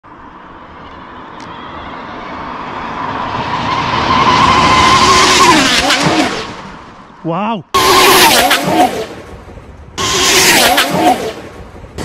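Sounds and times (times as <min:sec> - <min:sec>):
electric rc car motor whine: 0:10.0 - 0:11.4.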